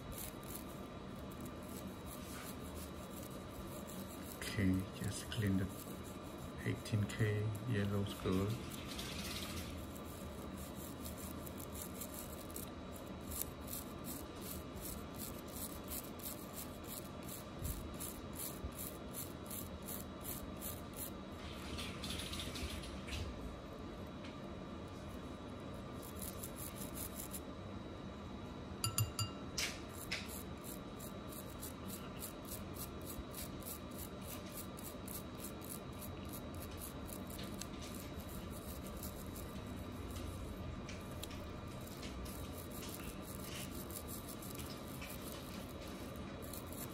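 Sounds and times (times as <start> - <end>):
toothbrush scrubbing a ring: 0.0 - 22.7, 25.9 - 27.5, 29.8 - 46.9.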